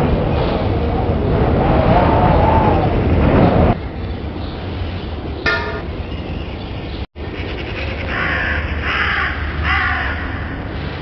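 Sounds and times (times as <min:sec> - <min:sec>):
crow cawing: 0:08.1 - 0:10.5.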